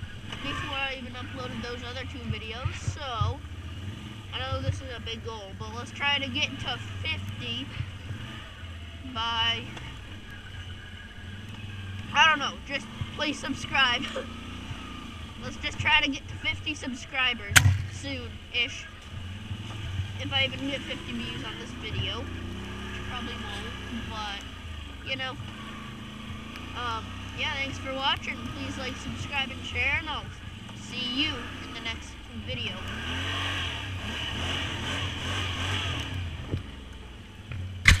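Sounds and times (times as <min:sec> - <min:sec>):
quad bike engine running: 0:00.0 - 0:38.0.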